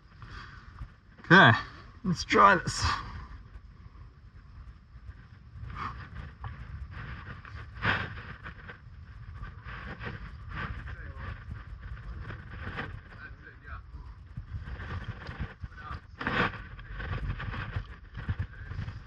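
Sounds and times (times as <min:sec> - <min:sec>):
wind rumbling on microphone: 0:00.0 - 0:19.0.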